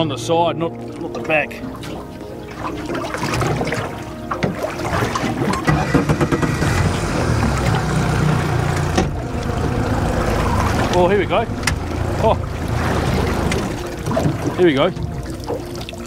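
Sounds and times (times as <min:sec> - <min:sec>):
water noise: 0:00.0 - 0:16.0
wind: 0:00.0 - 0:16.0
low rumble: 0:05.7 - 0:14.3.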